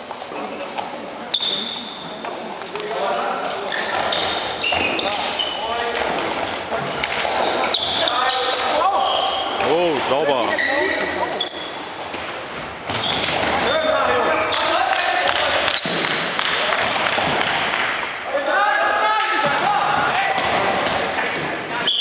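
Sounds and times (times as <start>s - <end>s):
sports shoes squeaking on floor: 0.0s - 2.4s, 3.6s - 14.8s, 15.4s - 16.2s, 20.3s - 22.0s
players shouting: 18.3s - 21.0s.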